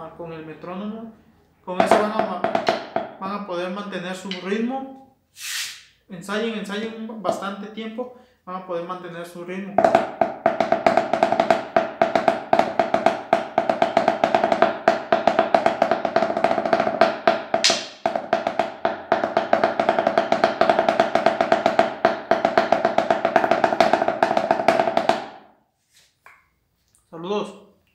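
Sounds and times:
snare drum under towel: 0:09.8 - 0:25.3.

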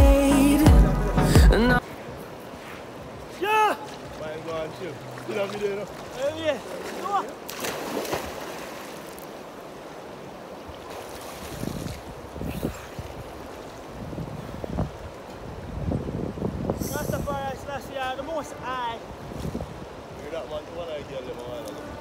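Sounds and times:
man calling out: 0:01.3 - 0:01.8, 0:03.4 - 0:04.0, 0:06.2 - 0:07.4
river washing at shore: 0:01.8 - 0:22.0
water splash: 0:03.3 - 0:09.9, 0:10.6 - 0:14.0.

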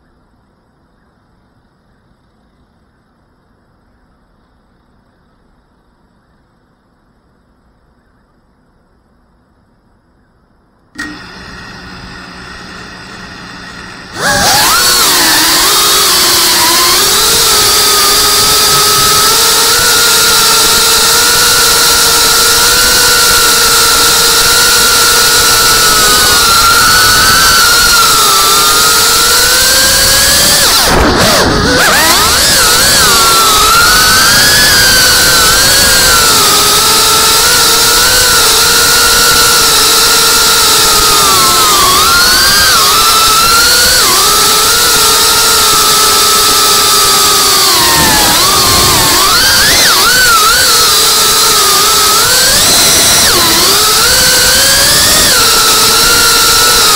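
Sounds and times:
drone motors whining: 0:10.9 - 0:56.9.

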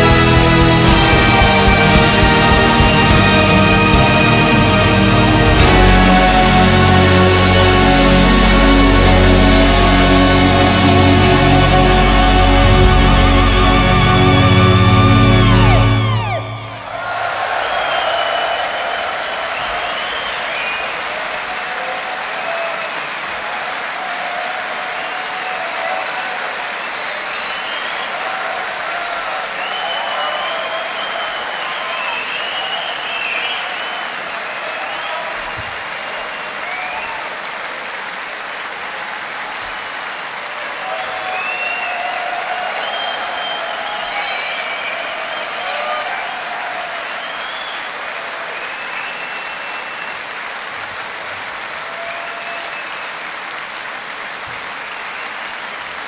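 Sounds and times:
audience clapping: 0:00.0 - 0:56.0
crowd cheering: 0:00.0 - 0:56.0.

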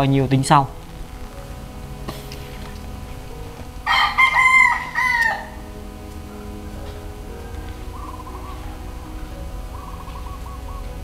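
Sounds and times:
rooster crowing: 0:03.8 - 0:10.8.

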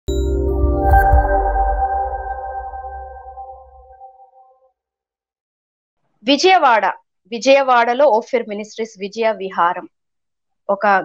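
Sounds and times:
low bass drone: 0:00.1 - 0:04.1
held synthesized chord: 0:00.1 - 0:04.5.

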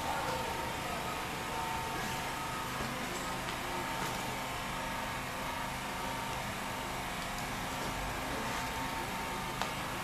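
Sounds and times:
mechanical hum and hiss: 0:00.0 - 0:10.0.

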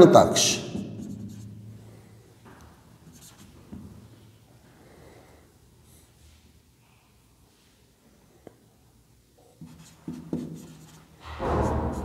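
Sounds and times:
pen strokes on paper: 0:01.0 - 0:01.6, 0:03.0 - 0:03.6, 0:09.6 - 0:12.0.

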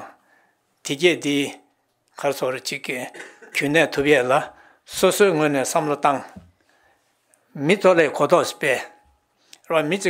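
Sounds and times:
man lecturing into a microphone: 0:00.0 - 0:00.2, 0:00.8 - 0:06.5, 0:07.4 - 0:10.0.

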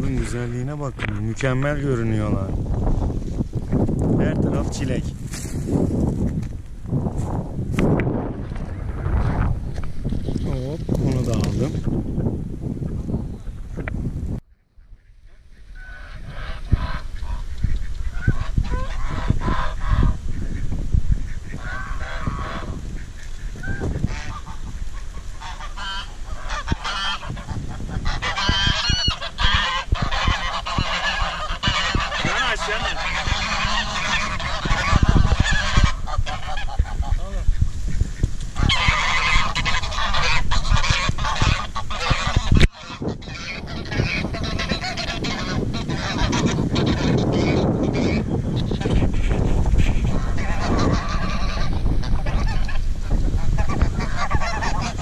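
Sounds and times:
geese honking: 0:14.6 - 0:55.0.

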